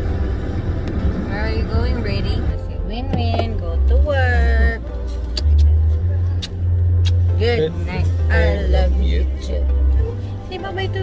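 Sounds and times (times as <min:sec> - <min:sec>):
car engine rumble: 0:00.0 - 0:11.0.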